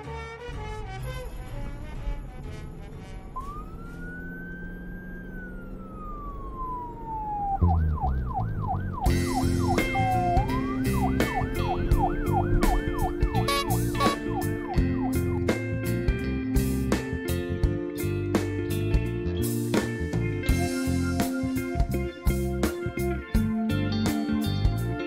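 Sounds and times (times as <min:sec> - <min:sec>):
siren wailing and yelping: 0:03.4 - 0:15.5
music chords: 0:09.0 - 0:25.0.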